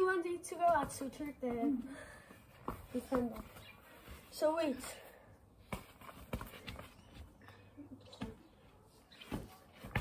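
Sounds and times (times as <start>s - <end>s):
foot tapping football: 0.5s - 3.7s, 5.7s - 7.3s, 9.3s - 10.0s.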